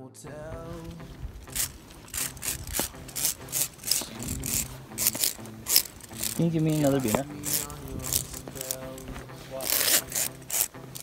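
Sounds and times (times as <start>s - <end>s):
footsteps scuffing on gritty stone: 1.7s - 10.8s.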